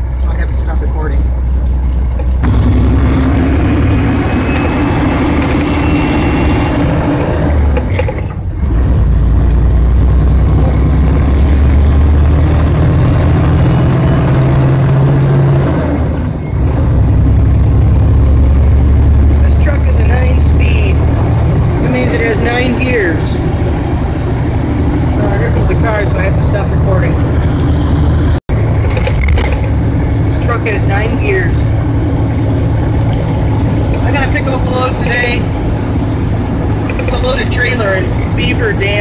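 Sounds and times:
truck diesel engine from cab: 0:00.0 - 0:39.0.

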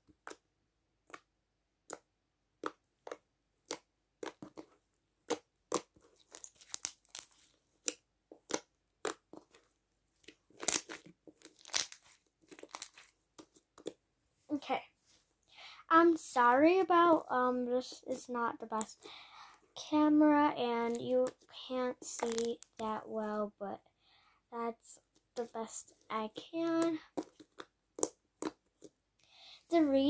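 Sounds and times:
slime clicking and popping: 0:05.2 - 0:09.3, 0:10.6 - 0:13.0, 0:22.1 - 0:22.6.

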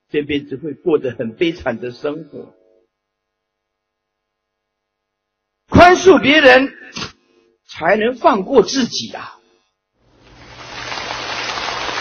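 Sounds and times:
audience applauding: 0:10.2 - 0:12.0.

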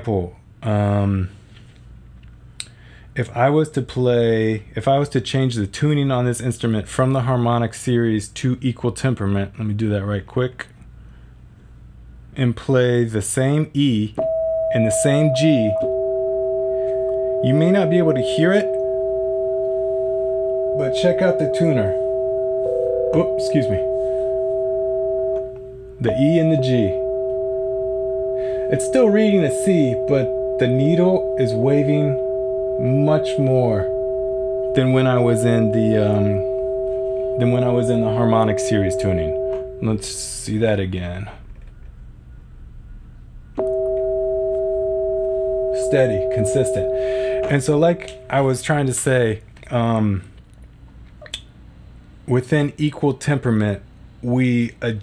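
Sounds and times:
two steady synthesizer tones: 0:14.2 - 0:40.8, 0:42.0 - 0:48.9.

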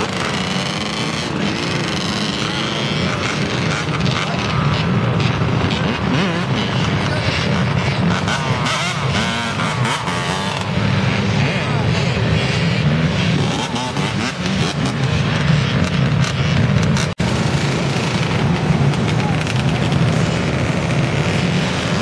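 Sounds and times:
crowd voices: 0:00.0 - 0:22.0
dirt bike engines revving: 0:00.0 - 0:22.0.

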